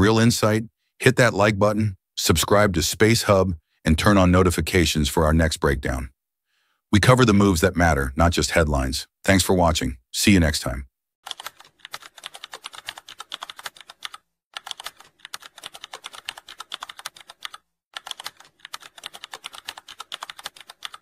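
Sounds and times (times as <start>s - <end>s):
keyboard typing clicks: 11.3s - 21.0s.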